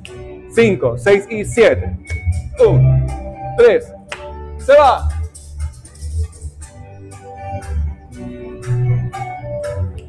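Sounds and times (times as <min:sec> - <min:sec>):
latin dance music: 0:00.0 - 0:10.0.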